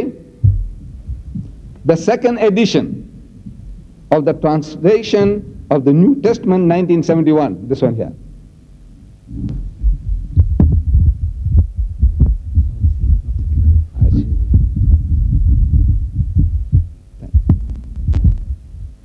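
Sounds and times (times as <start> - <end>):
microphone handling thumps: 0.4 - 1.9, 2.8 - 4.1, 5.0 - 6.0, 9.2 - 19.0
sharp microphone clicks: 0.4 - 1.9, 9.3 - 19.0.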